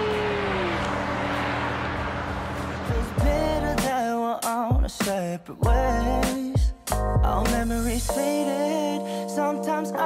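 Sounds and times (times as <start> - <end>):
steady rushing noise: 0.0 - 3.3.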